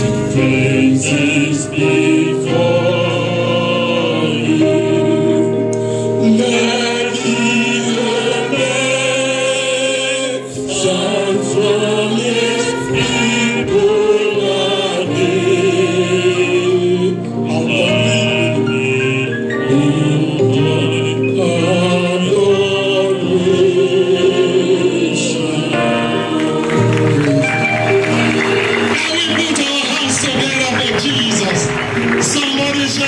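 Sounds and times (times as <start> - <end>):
man singing into microphone: 0.0 - 26.6
group singing a hymn: 0.0 - 29.0.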